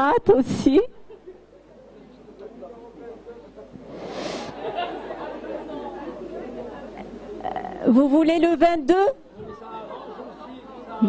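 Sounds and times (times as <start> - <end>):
audience chatter in a hall: 1.2 - 8.0, 9.2 - 11.0
brief hiss: 3.8 - 4.7.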